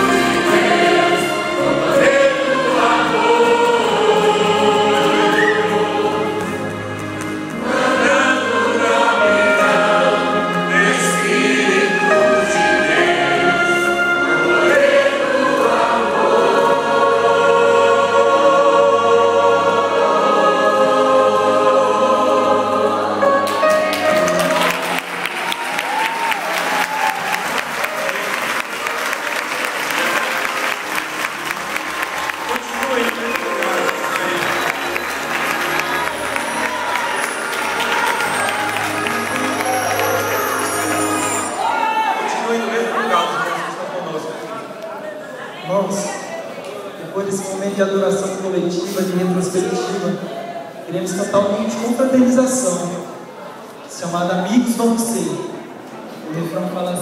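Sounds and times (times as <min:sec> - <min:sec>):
choir singing a hymn: 0:00.0 - 0:44.8
audience applause: 0:23.4 - 0:41.8.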